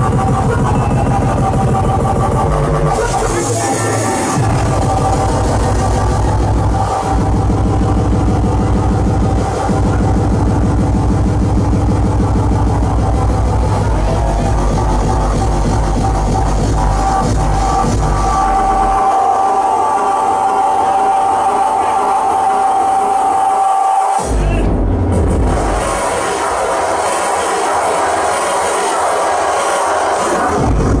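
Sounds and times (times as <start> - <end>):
heavy bass beat: 0.0 - 31.0
loud electronic music: 0.0 - 31.0.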